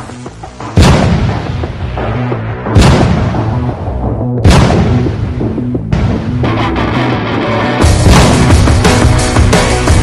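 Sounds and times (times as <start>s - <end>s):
cinematic boom hit: 2.7s - 3.8s, 4.4s - 6.6s, 7.9s - 8.8s.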